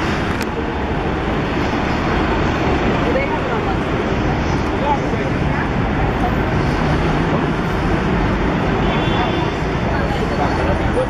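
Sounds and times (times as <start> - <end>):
road traffic noise: 0.0 - 11.0
voices of passers-by: 0.0 - 11.0.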